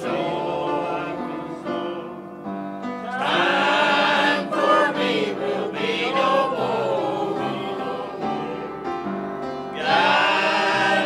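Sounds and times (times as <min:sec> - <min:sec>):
church choir singing a hymn: 0:00.0 - 0:11.0.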